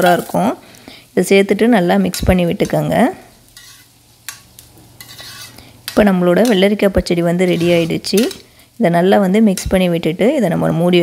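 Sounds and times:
woman speaking: 0.0s - 0.6s, 1.2s - 3.2s, 6.0s - 11.0s
spoon stirring in a pan: 3.5s - 6.8s, 7.4s - 8.6s.

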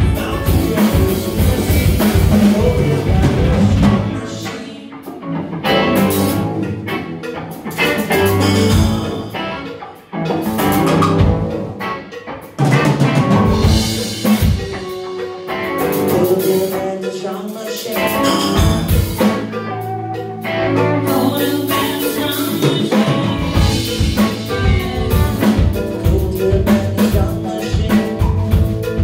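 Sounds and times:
bass guitar: 0.0s - 29.0s
drum kit: 0.0s - 29.0s
electric guitars: 0.0s - 29.0s.

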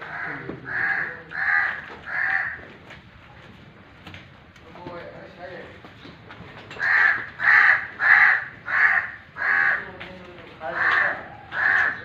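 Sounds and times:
crow cawing: 0.0s - 2.8s, 6.8s - 10.0s, 10.6s - 12.0s.

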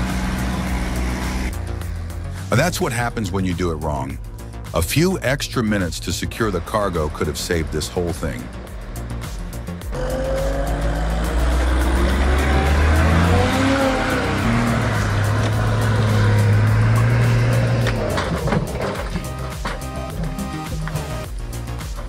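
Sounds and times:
truck engine running hard: 0.0s - 3.2s, 5.6s - 21.8s
background music: 0.0s - 22.0s
logs clattering off truck: 16.9s - 21.2s.

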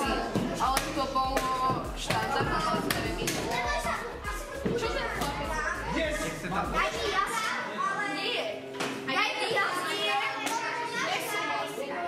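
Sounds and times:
children chattering: 0.0s - 12.0s.

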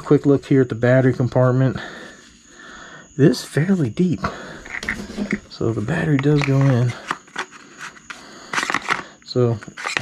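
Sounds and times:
plastic clicks and rattles: 6.1s - 7.5s.

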